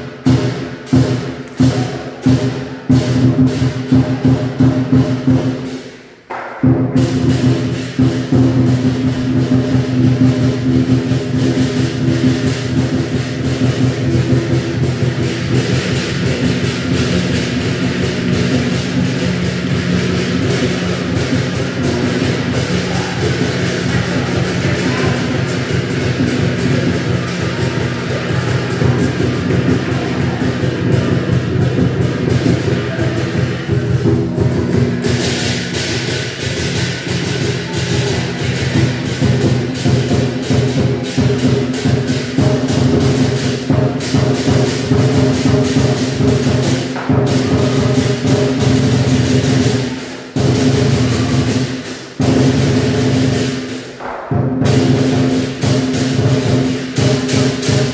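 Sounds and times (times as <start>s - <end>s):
cymbals ringing: 0.0s - 57.9s
drum beaten fast: 0.0s - 57.9s.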